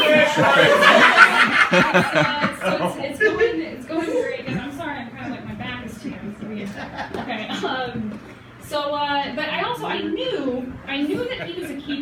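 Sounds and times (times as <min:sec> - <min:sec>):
audience laughing: 0:00.0 - 0:05.4, 0:06.1 - 0:07.9, 0:11.0 - 0:12.0
voices: 0:00.0 - 0:12.0.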